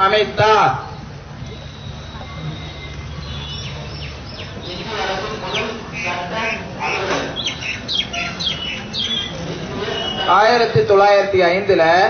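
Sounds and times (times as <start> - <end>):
small birds chirping: 0.5 - 10.6.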